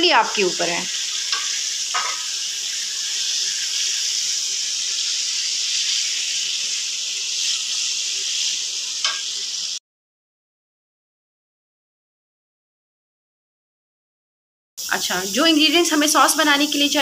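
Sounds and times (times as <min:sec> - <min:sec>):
chicken frying in hot oil: 0:00.0 - 0:09.8, 0:14.8 - 0:17.0.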